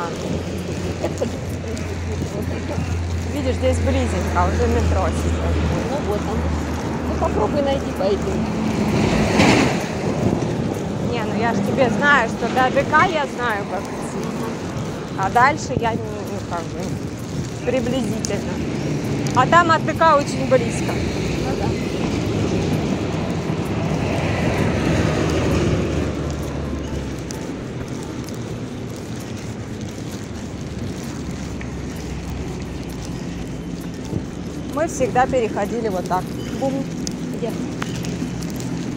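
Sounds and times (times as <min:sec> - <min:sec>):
heavy truck passing: 0:00.0 - 0:38.9.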